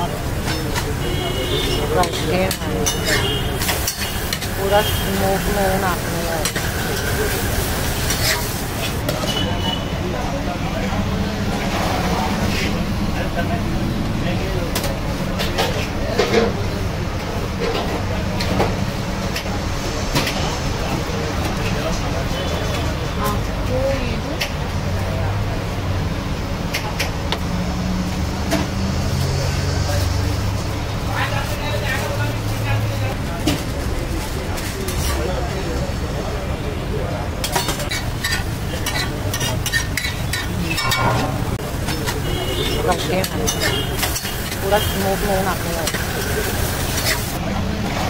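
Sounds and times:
metal spatula scraping griddle: 0:37.5 - 0:42.4.

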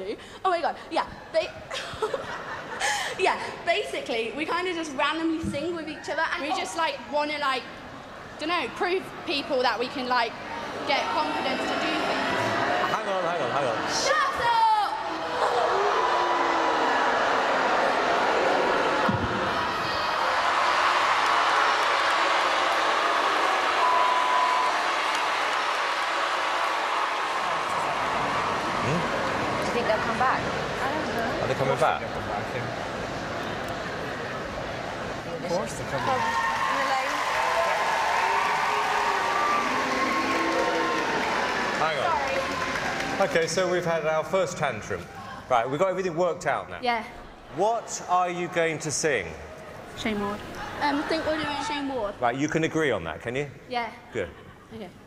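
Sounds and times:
crowd cheering: 0:10.4 - 0:45.4, 0:50.4 - 0:51.9
audience clapping: 0:20.2 - 0:30.4, 0:36.0 - 0:44.2
audience murmuring: 0:23.4 - 0:36.3.

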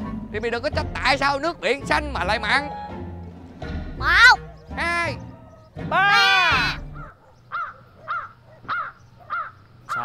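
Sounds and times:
crow cawing: 0:06.1 - 0:10.0.

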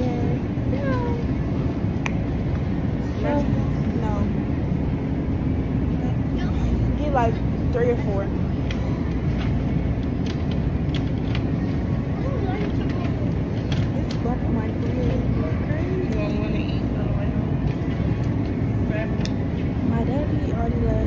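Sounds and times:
faint indistinct voices: 0:11.5 - 0:21.0.

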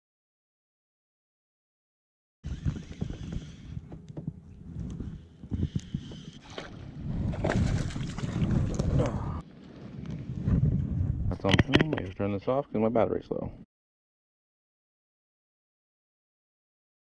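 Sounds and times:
wind on microphone: 0:02.4 - 0:12.2
water sloshing and splashing: 0:06.3 - 0:09.4.

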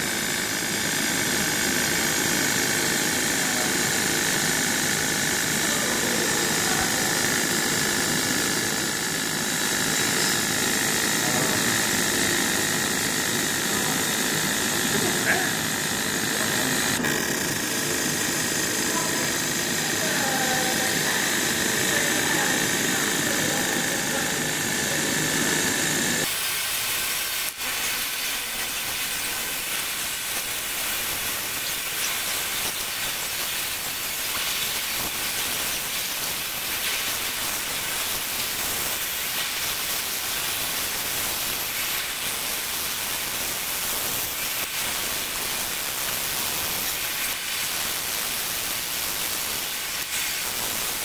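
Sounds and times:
fume extraction running: 0:00.0 - 0:51.0
hissing laser engraver: 0:00.0 - 0:51.0.

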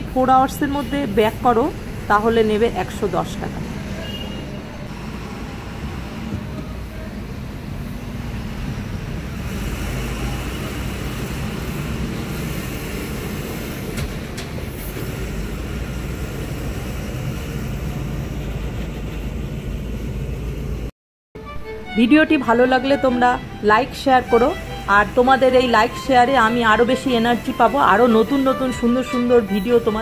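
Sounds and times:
car engine and tyre noise: 0:03.4 - 0:20.9.

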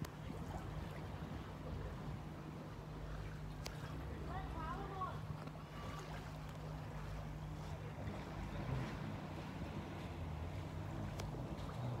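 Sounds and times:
jet ski engine droning: 0:00.0 - 0:12.0.

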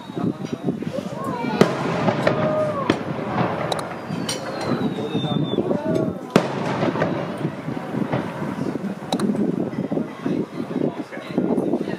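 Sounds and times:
fireworks bangs: 0:00.0 - 0:11.1
crowd chatter: 0:00.0 - 0:11.9.

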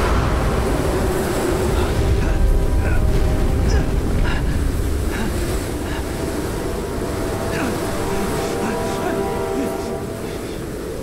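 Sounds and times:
deep rumbling: 0:00.0 - 0:08.4.

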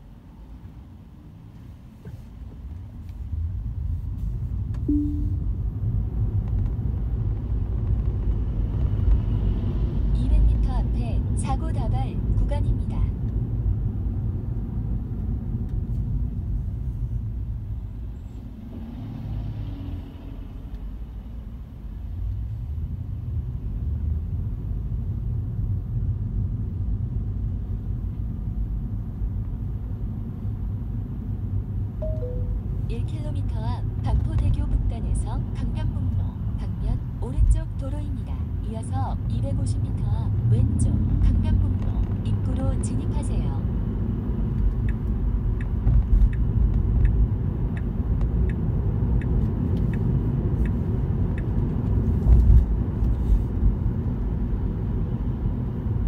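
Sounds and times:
road and tyre rumble: 0:00.0 - 0:56.0.

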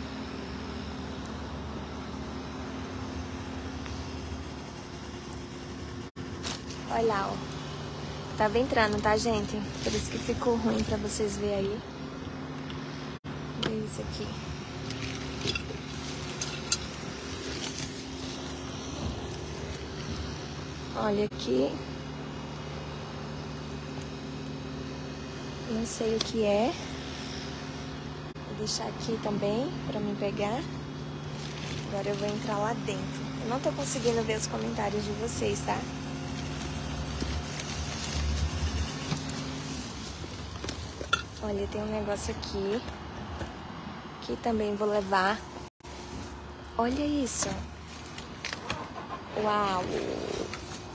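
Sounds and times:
machine humming: 0:00.0 - 0:41.9
plastic trash bags rustling: 0:14.9 - 0:20.0, 0:30.6 - 0:41.5.

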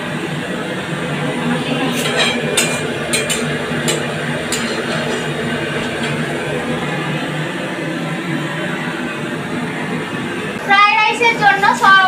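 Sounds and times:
low hum and hiss: 0:00.0 - 0:12.0.

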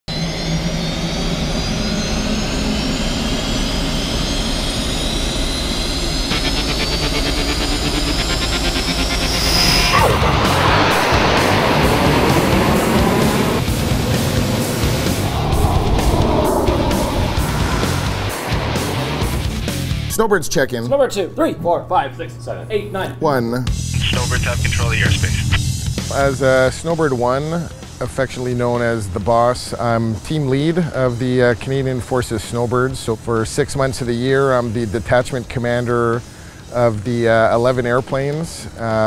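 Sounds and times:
jet engine whine: 0:00.1 - 0:21.4, 0:24.0 - 0:28.9
jet passing close: 0:08.8 - 0:20.1.

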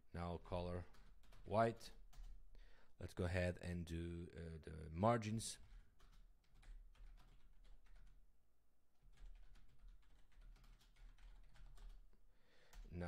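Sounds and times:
faint keyboard typing: 0:00.6 - 0:02.6, 0:05.4 - 0:08.3, 0:09.0 - 0:13.0.

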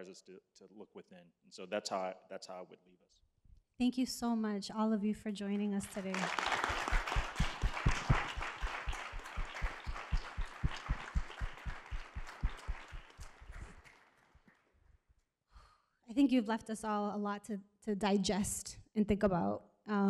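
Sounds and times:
audience applause: 0:05.8 - 0:14.2.

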